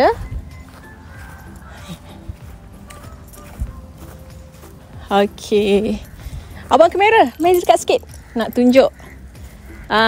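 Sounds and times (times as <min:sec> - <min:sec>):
footsteps on grass: 0:00.0 - 0:10.0
low outdoor background: 0:00.0 - 0:10.0.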